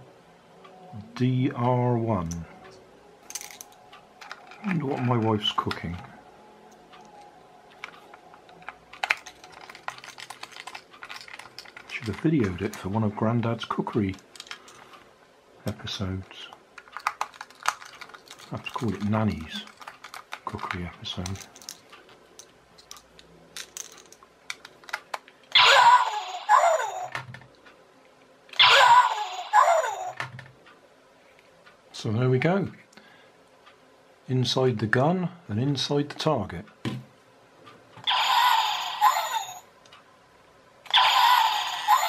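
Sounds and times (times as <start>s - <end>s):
toy gun electronic zap: 38.0s - 39.6s, 40.9s - 42.0s.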